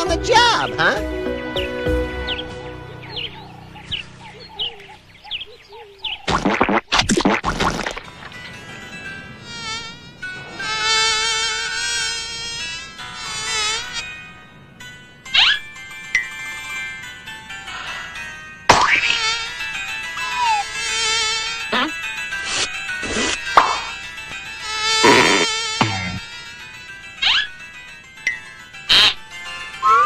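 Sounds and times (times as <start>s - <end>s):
cartoon fly buzzing: 9.4s - 14.1s, 18.7s - 24.0s, 24.6s - 27.5s, 28.9s - 29.2s, 29.8s - 30.0s
rising zip: 29.8s - 30.0s.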